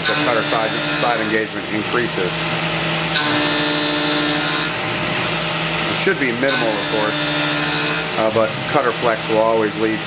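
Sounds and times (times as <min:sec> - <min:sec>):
milling machine cutting metal: 0:00.0 - 0:10.0.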